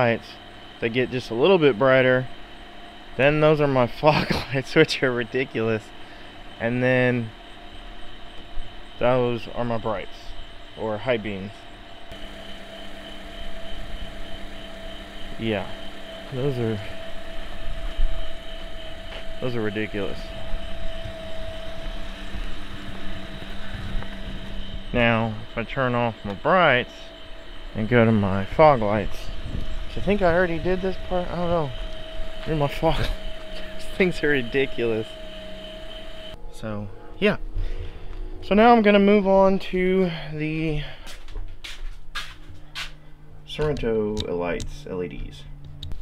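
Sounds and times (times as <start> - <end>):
car engine idling: 0.0 - 36.4
steady low hum: 0.0 - 46.0
footsteps on concrete: 41.0 - 43.0.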